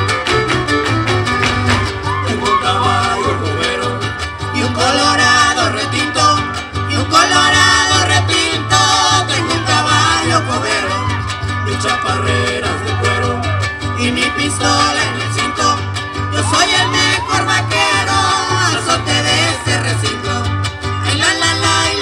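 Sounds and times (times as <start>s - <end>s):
fast strummed guitars: 0.0s - 22.0s.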